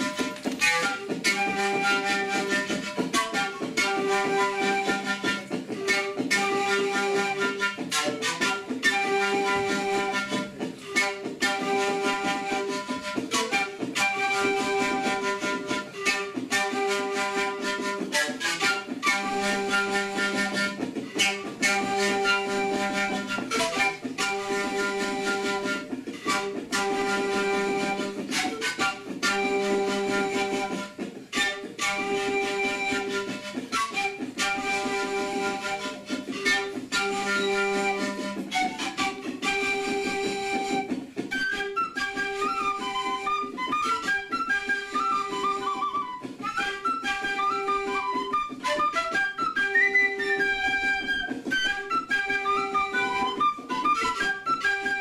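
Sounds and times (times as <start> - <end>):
panpipes melody: 0.0 - 55.0
stringed instrument accompanying: 0.0 - 55.0.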